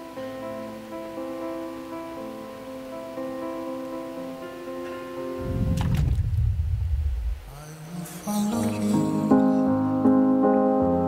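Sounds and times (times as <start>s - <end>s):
low soundtrack rumble over loudspeakers: 5.4s - 9.0s.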